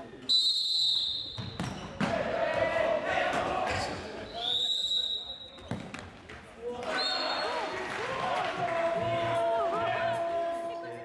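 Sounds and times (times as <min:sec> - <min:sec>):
referee's whistle blast: 0:00.3 - 0:01.6.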